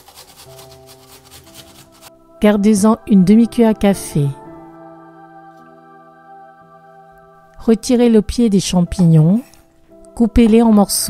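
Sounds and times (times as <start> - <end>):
ginger grating on metal grater: 0.0 - 2.1
soft background music: 0.0 - 11.0.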